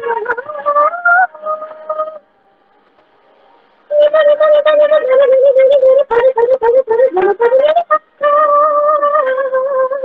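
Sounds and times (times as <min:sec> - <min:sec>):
woman singing unaccompanied: 0:00.0 - 0:02.2, 0:03.9 - 0:10.0.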